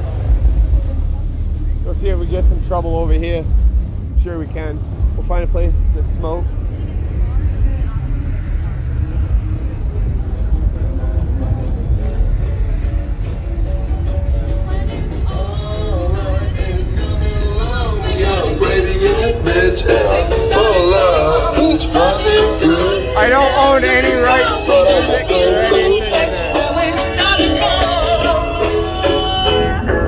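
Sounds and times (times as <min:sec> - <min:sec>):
car audio music with heavy bass: 0:00.0 - 0:30.0
song with sung vocals: 0:13.4 - 0:30.0.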